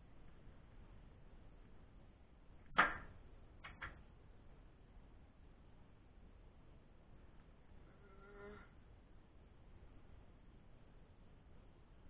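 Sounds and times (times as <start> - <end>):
light snaps or clicks: 2.7 - 4.0.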